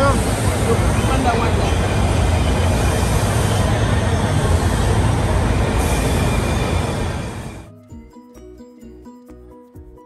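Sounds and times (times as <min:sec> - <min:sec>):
train rumbling on track: 0:00.0 - 0:07.7.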